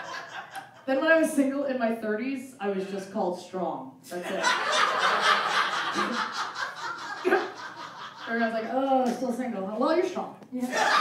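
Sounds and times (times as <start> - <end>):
audience laughing: 0.0 - 0.9, 4.2 - 8.8, 10.6 - 11.0.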